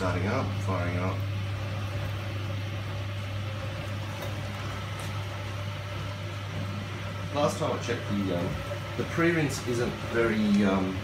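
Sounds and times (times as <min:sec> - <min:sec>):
dishwasher pump humming: 0:00.0 - 0:11.0
water flowing in: 0:00.0 - 0:11.0.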